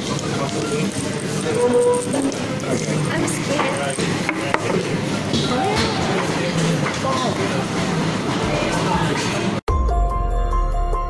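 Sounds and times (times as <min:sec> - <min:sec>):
chatter of voices: 0:00.0 - 0:09.6
faint music: 0:00.0 - 0:09.6.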